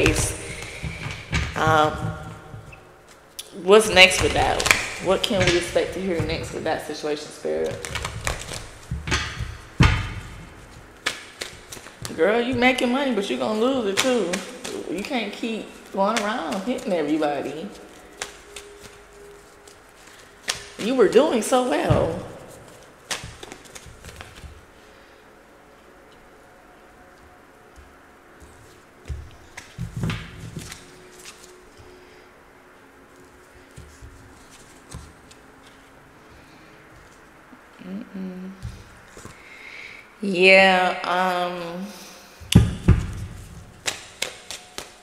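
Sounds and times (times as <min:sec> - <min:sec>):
cards shuffling: 0:07.5 - 0:21.0, 0:22.4 - 0:24.7, 0:28.4 - 0:32.0, 0:33.1 - 0:36.0, 0:38.7 - 0:39.4, 0:43.0 - 0:45.0.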